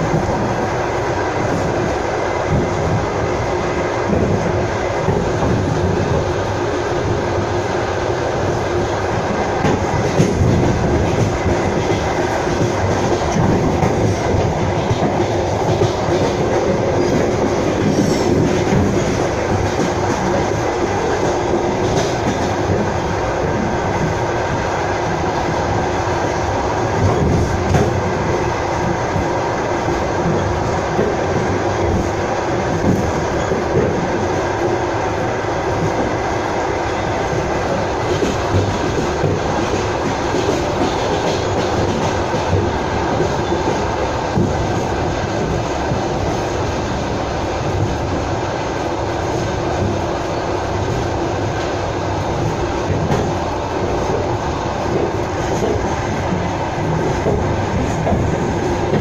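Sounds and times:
train wheels rolling on rails: 0.0s - 59.0s.

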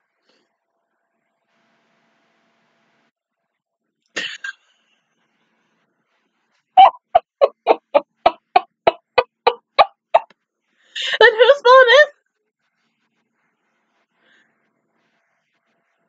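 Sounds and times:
woman laughing: 6.8s - 10.2s, 11.0s - 12.1s.

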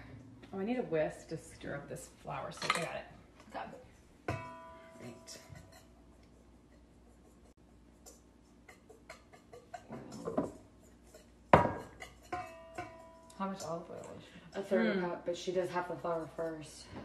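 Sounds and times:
whisk scraping a metal bowl: 5.3s - 13.1s.

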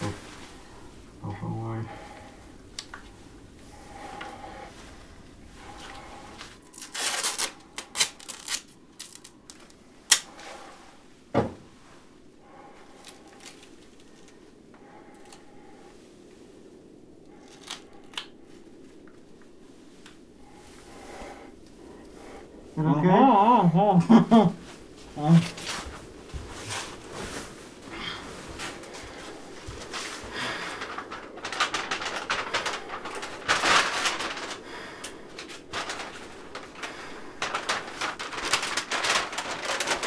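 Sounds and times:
plastic suits rustling: 0.0s - 40.0s.

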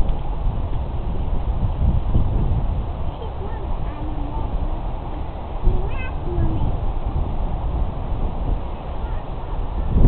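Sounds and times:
distant voices: 0.0s - 10.0s
low microphone rumble: 0.0s - 10.0s.

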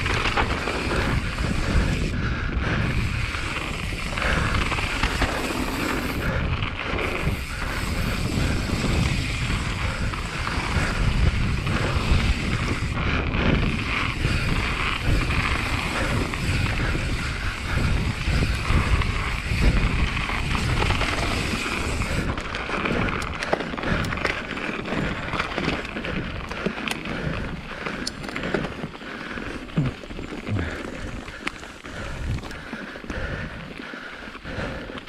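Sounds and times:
wind on microphone: 0.0s - 27.8s
bike rumbling and rattling on gravel: 0.0s - 35.0s.

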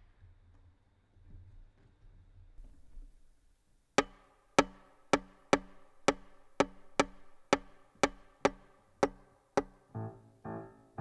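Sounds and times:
rhythmic strikes on violin strings: 4.0s - 10.7s.

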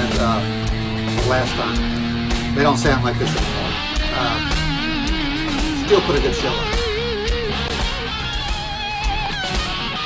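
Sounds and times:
electric guitar solo: 0.0s - 10.0s
steady drum beat: 0.0s - 10.0s.

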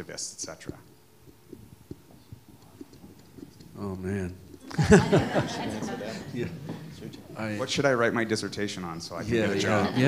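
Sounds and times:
man talking: 0.0s - 0.9s, 3.8s - 10.0s.

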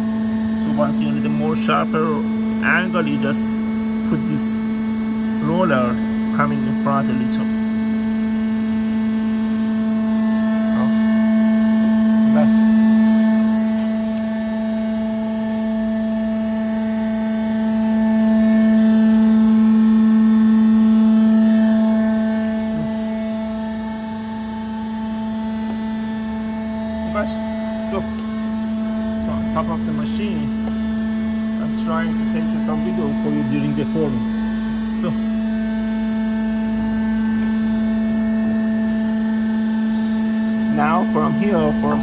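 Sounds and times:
machine drive humming: 0.0s - 42.0s.

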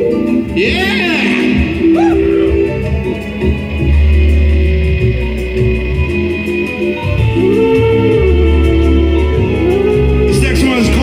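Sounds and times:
death metal band playing: 0.2s - 11.0s.

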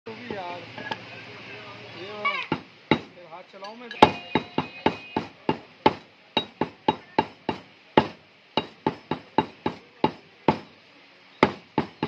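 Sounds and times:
people talking: 0.1s - 12.0s
cleaver chopping on wood: 2.5s - 3.2s, 4.0s - 10.7s, 11.4s - 12.0s.

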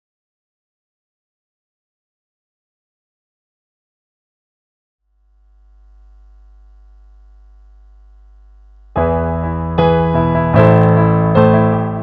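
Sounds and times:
electrical mains hum: 5.1s - 9.0s.

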